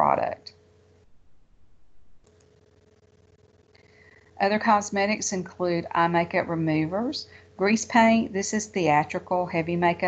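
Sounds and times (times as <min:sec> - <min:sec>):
faint electrical tone: 0:00.0 - 0:10.0.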